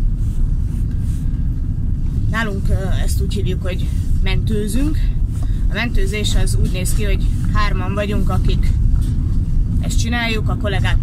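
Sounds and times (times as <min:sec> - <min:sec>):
van engine rumble from inside: 0:00.0 - 0:11.0.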